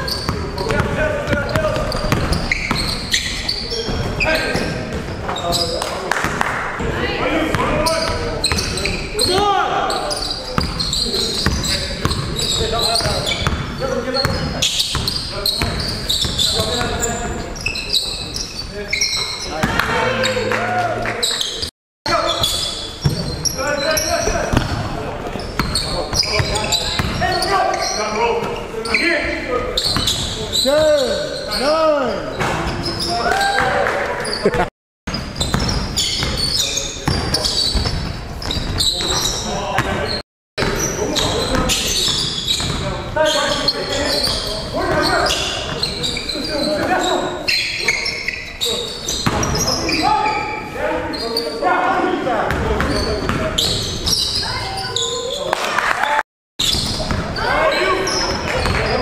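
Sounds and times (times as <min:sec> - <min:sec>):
shoes squeaking: 0:00.0 - 0:06.0, 0:07.5 - 0:59.0
players calling out: 0:00.0 - 0:34.7.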